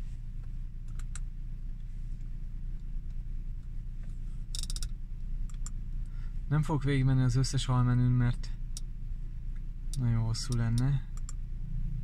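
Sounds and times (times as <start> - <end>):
low car cabin hum: 0.0 - 12.0
infotainment control clicks: 9.9 - 11.4.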